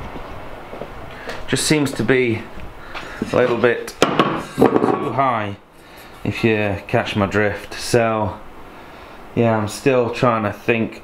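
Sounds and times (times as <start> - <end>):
person speaking: 3.2 - 4.0
metal knock on wood: 4.0 - 5.1.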